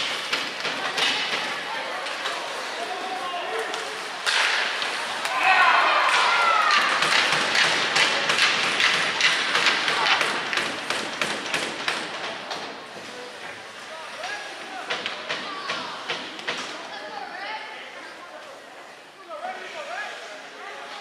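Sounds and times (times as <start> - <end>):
sticks and puck clacking on ice: 0.0 - 13.3
indistinct shouting voices: 5.2 - 7.2.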